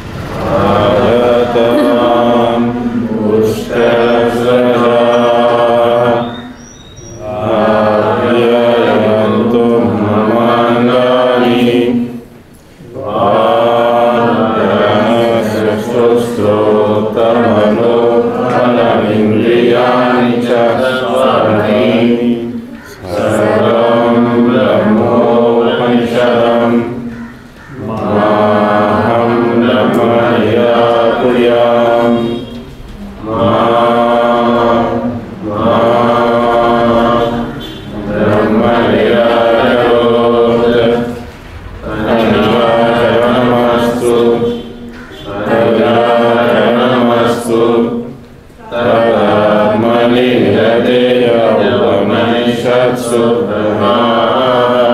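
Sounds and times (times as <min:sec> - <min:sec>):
person chanting: 0:00.0 - 0:06.6, 0:07.2 - 0:12.2, 0:12.8 - 0:27.1, 0:27.7 - 0:54.9
man chanting: 0:00.4 - 0:06.3, 0:12.9 - 0:27.0.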